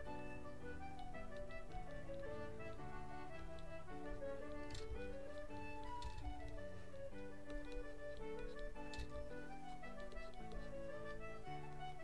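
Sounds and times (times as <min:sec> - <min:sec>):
concertina music: 0:00.0 - 0:12.0.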